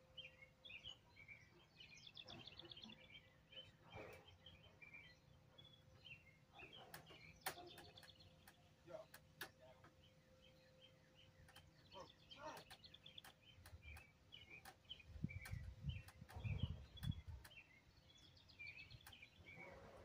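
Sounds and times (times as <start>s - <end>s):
songbirds chirping: 0.0s - 20.0s.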